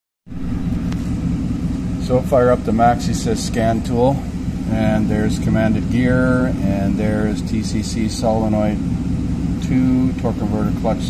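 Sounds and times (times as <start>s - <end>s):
low mechanical rumble: 0.3s - 11.0s.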